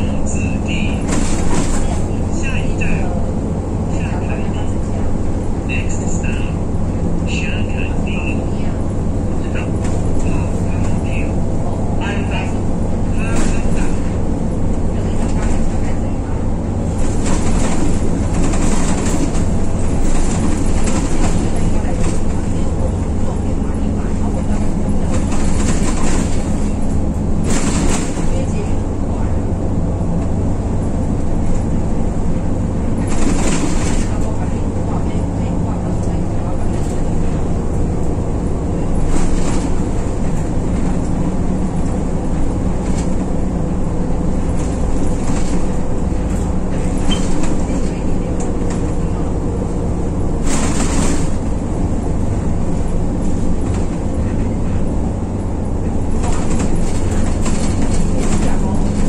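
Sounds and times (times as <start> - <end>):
bus engine drone: 0.0 - 59.0
road rumble: 0.0 - 59.0.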